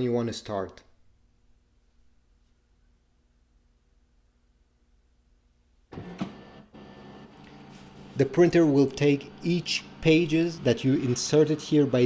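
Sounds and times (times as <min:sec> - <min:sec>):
scanner motor running: 0:06.7 - 0:12.0.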